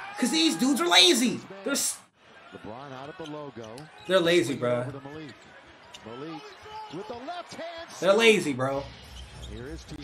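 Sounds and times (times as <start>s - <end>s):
arena sound: 0.0s - 2.0s, 4.1s - 4.9s, 8.0s - 8.8s
commentator talking: 0.1s - 2.0s, 4.1s - 5.0s, 6.9s - 8.9s.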